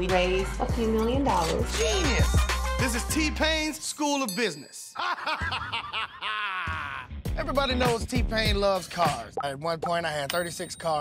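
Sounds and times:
man laughing: 5.0s - 7.2s.

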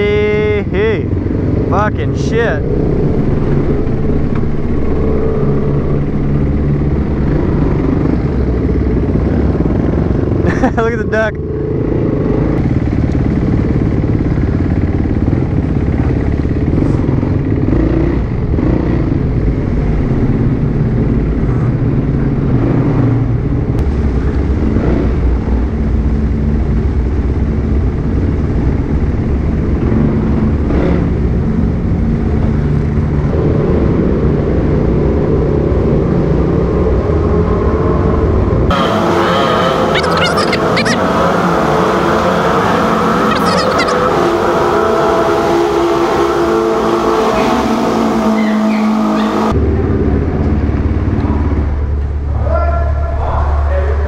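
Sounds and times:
motorcycle engine in a tunnel: 0.0s - 54.0s.

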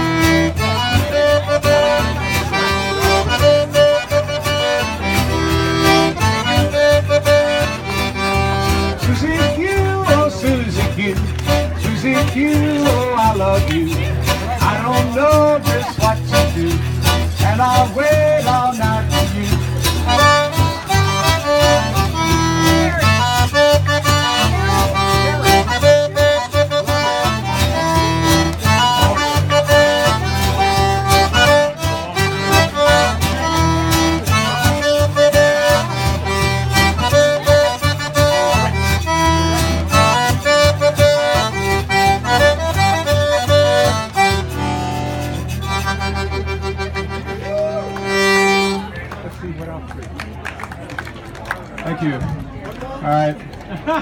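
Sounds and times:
strummed acoustic guitar: 0.0s - 49.0s
button accordion: 0.0s - 49.2s.

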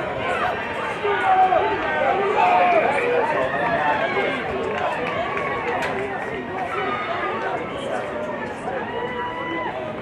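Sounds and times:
crowd shouting and calling: 0.0s - 10.0s.

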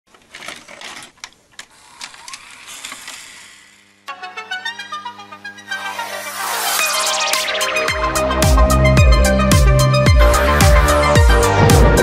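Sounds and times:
mechanical whirr: 0.3s - 7.2s.

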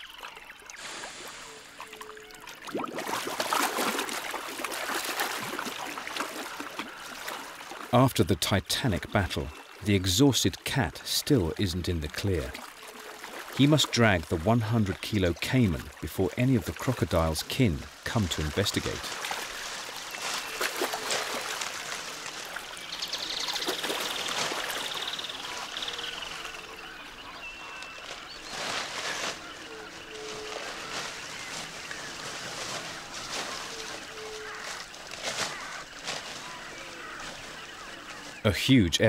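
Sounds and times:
branches and leaves rustling: 0.0s - 8.0s, 12.3s - 38.5s
water sloshing: 0.0s - 8.0s, 10.5s - 38.4s.

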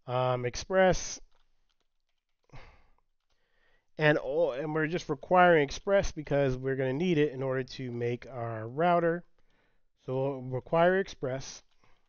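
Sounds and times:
faint keyboard clicks: 1.2s - 3.5s, 11.6s - 12.0s.

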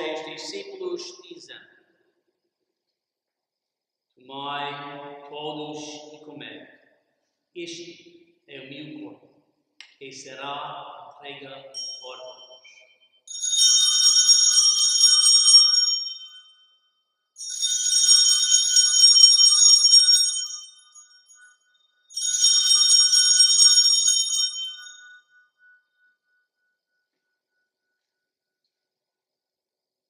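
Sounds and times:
altar bells ringing: 11.3s - 16.8s, 17.4s - 25.8s.

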